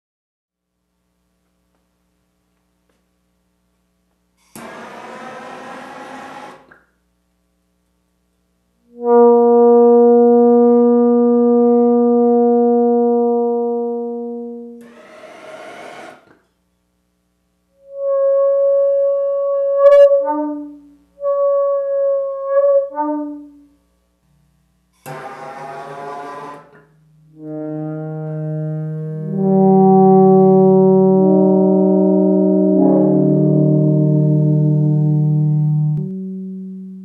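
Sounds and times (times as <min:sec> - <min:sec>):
glass tube singing higher note: 0:08.9 - 0:14.8, 0:17.8 - 0:23.6, 0:27.0 - 0:37.0
glass tube singing low note: 0:08.9 - 0:14.8, 0:27.0 - 0:37.0.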